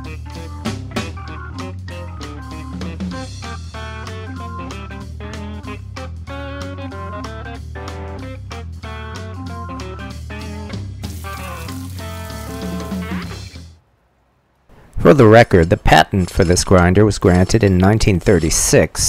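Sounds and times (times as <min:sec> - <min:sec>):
bass: 0:00.0 - 0:13.8, 0:14.8 - 0:19.0
guitar: 0:00.0 - 0:13.8
steady drum beat: 0:10.5 - 0:13.7.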